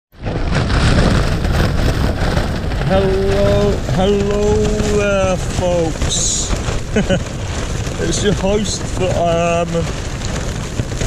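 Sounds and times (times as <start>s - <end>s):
strong wind buffeting a tent: 0.1s - 11.0s.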